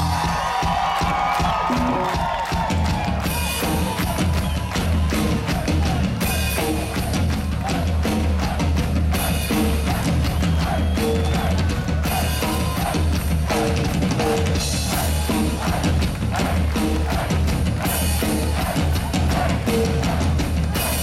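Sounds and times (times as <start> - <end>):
live ska-rock band playing: 1.5 - 21.0.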